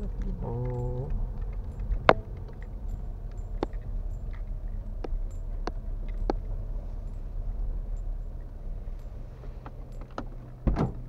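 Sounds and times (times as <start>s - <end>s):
car engine and road noise: 0.0s - 11.0s.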